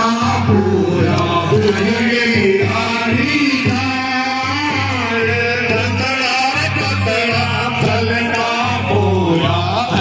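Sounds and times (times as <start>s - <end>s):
steady drum beat: 0.0s - 10.0s
voices singing chant-like song: 0.0s - 10.0s.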